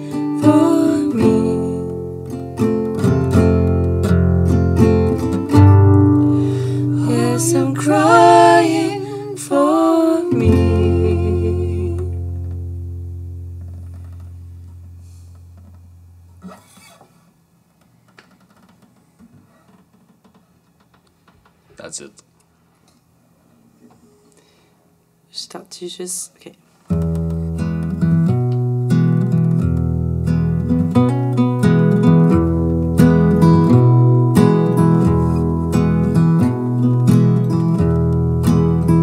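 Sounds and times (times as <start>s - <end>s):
acoustic guitars strumming: 0.0s - 17.3s, 26.9s - 39.0s.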